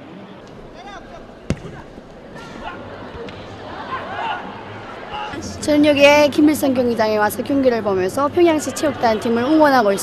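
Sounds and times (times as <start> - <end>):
crowd voices: 0.0 - 10.0
ball struck thud: 1.4 - 3.4.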